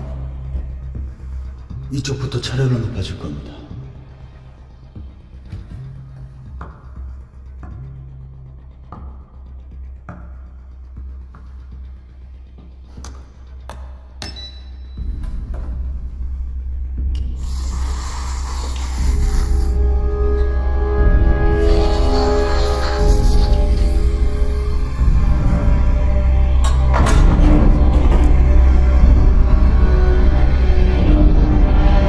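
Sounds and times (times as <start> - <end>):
low drone: 2.8 - 32.0.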